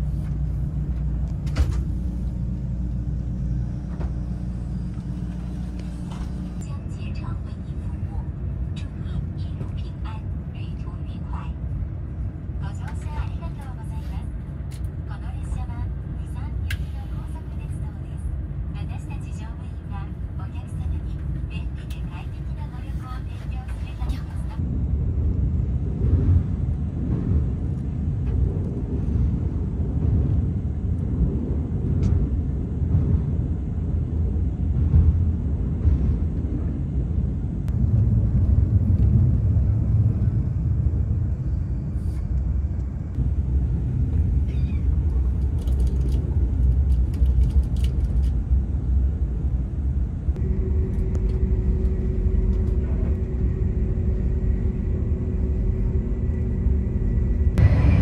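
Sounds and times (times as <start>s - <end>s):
train cabin rumble: 0.0s - 58.0s
passengers' voices: 1.4s - 11.7s, 12.5s - 24.7s.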